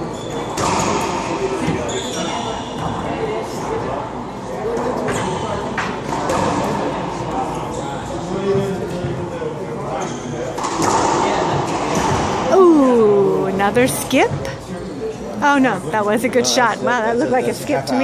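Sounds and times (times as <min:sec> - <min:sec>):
racquetball hits ringing in court: 0:00.3 - 0:03.1, 0:10.5 - 0:12.5
people's voices: 0:01.6 - 0:18.0.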